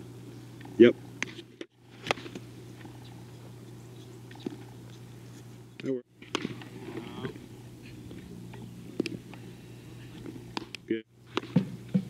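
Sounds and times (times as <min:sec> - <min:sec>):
steady low hum: 0:00.0 - 0:12.0
bat cracking a ball: 0:02.0 - 0:02.4, 0:06.2 - 0:07.4, 0:10.2 - 0:12.0
person calling out: 0:06.9 - 0:07.4.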